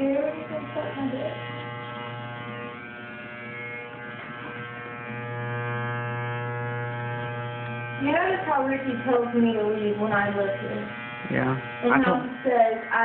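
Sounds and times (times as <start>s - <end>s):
electric hair clippers buzzing: 0.0s - 13.0s.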